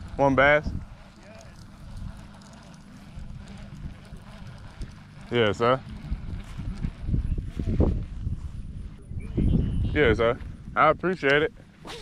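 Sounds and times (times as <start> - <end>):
low rumbling noise: 0.0 - 11.9.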